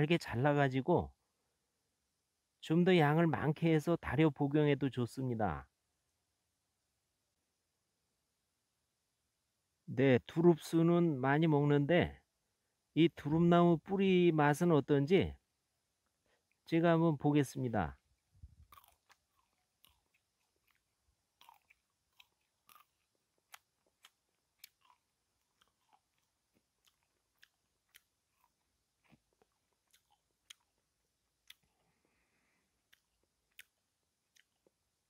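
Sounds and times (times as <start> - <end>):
person chewing tough root: 18.4 - 34.9.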